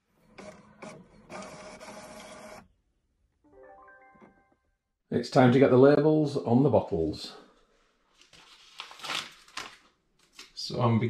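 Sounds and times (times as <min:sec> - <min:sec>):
printer feeding paper and printing: 0:00.2 - 0:02.6.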